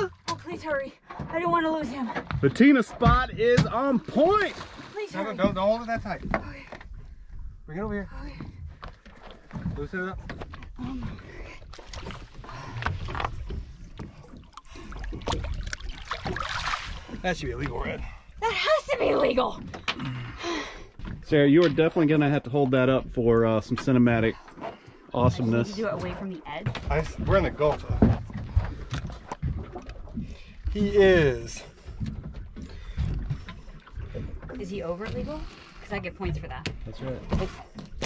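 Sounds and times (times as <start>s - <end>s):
water lapping against hull: 0.0s - 38.0s
knocks and thumps on boat deck: 0.2s - 4.4s, 5.3s - 11.4s, 22.9s - 35.4s, 36.0s - 38.0s
fish splashing at surface: 14.5s - 17.2s.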